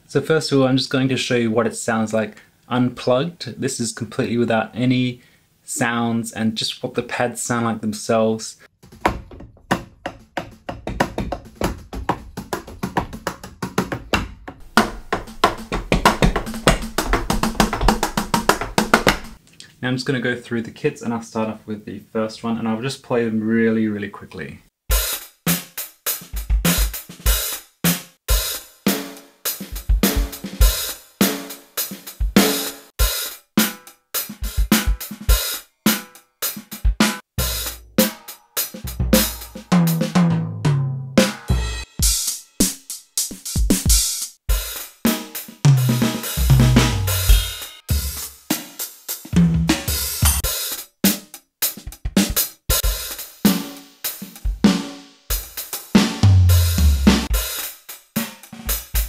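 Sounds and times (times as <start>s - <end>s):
electronic drum kit grooves: 9.9s - 19.4s, 24.9s - 59.0s.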